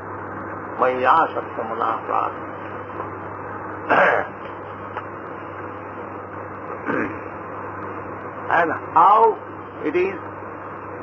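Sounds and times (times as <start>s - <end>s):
tape hiss: 0.0s - 11.0s
man clearing throat: 3.8s - 4.4s, 6.8s - 7.2s.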